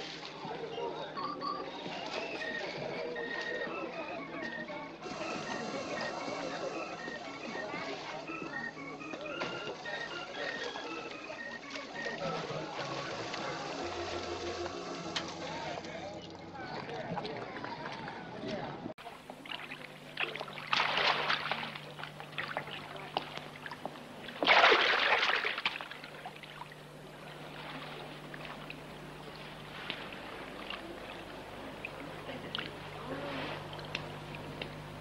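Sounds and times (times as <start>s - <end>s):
faint distant voices: 0.0s - 35.0s
people talking: 0.0s - 35.0s
steady low hum: 0.4s - 35.0s
water splashing in a pool: 15.9s - 35.0s.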